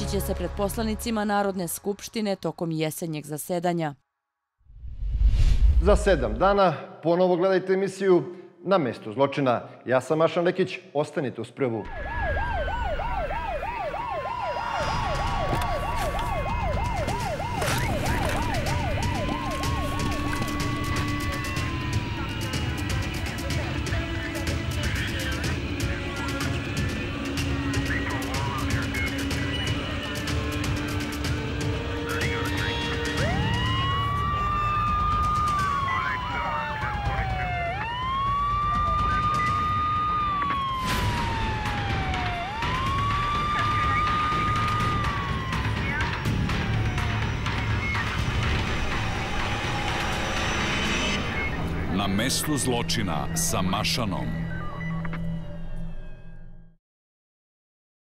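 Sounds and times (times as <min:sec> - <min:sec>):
low rumble: 0:04.7 - 0:06.6
siren yelping: 0:11.9 - 0:52.0, 0:54.3 - 0:55.6.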